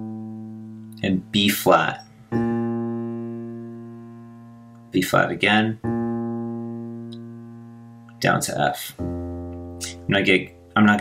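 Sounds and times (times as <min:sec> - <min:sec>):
low piano note: 0:00.0 - 0:11.0.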